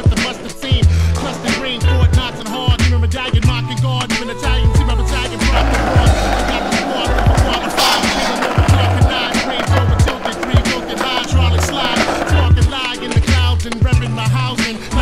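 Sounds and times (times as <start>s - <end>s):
skateboard clack: 0.0s - 14.9s
hip hop music with heavy bass: 0.0s - 15.0s
skateboard wheels rolling: 0.0s - 15.0s.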